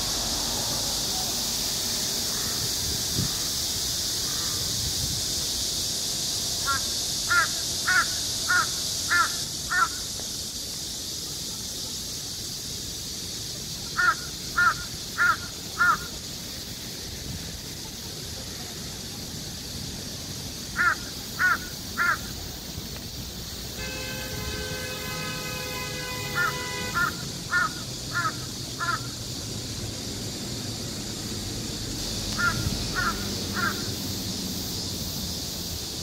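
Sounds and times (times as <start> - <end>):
crow cawing: 6.6 - 10.0, 14.0 - 16.1, 20.8 - 22.2, 26.4 - 29.2, 32.4 - 33.9.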